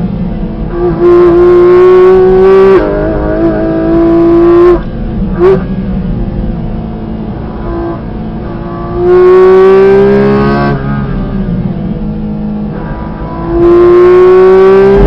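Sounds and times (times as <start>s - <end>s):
sports car engine revving: 0.0s - 15.0s.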